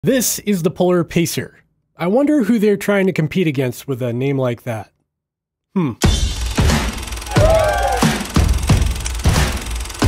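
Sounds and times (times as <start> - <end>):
music with deep punchy drum hits: 6.0 - 9.8.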